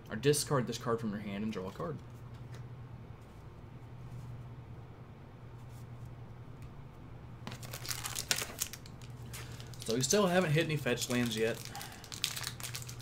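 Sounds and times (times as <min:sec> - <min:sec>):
faint low hum: 0:00.0 - 0:13.0
foil wrapper crinkling and tearing: 0:07.5 - 0:13.0.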